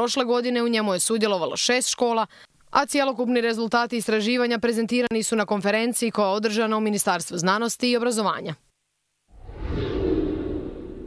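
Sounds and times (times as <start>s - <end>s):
whoosh: 9.3s - 11.0s.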